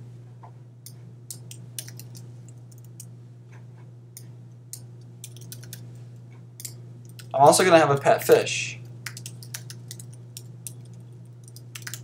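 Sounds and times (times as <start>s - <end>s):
typing on computer keyboard: 1.3s - 3.1s, 5.2s - 5.8s, 9.0s - 12.0s.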